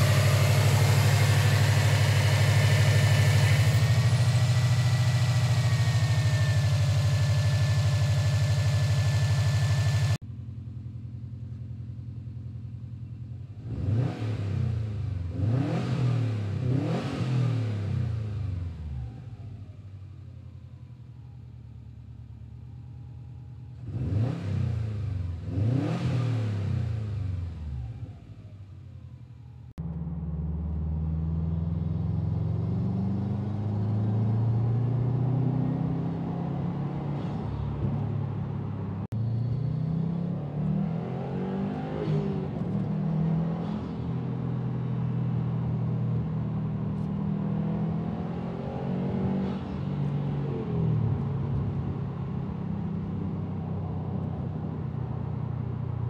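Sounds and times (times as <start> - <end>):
steady loud engine note: 0.0 - 10.2
car engine idling and revving: 0.0 - 56.0.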